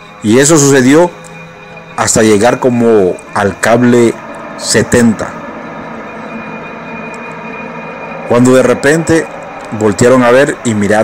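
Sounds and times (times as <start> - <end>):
drone of held tones: 0.0 - 11.0.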